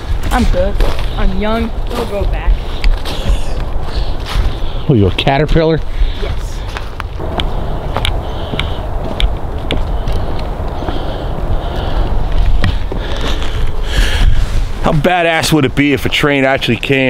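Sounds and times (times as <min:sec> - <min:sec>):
low microphone rumble: 0:00.0 - 0:16.0
footsteps crunching on leaves: 0:01.8 - 0:11.2.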